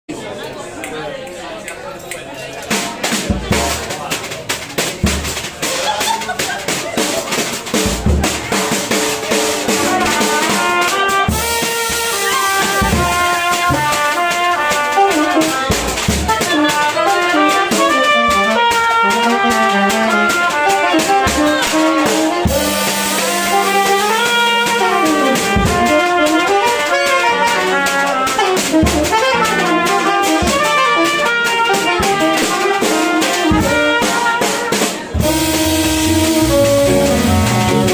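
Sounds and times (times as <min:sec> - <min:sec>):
drum kit playing swing: 0:02.2 - 0:37.9
trumpet and saxophone melody: 0:07.8 - 0:37.9
double bass: 0:10.0 - 0:34.3, 0:35.1 - 0:37.9
piano: 0:16.2 - 0:33.8, 0:35.0 - 0:37.9.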